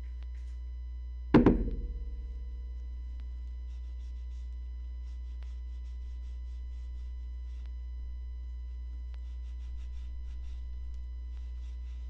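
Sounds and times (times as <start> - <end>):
loud ringing thunk: 1.4 - 2.5.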